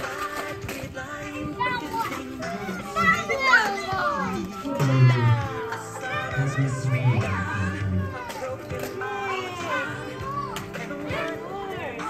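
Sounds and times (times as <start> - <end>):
background music: 0.0 - 12.0
children calling out: 1.3 - 12.0.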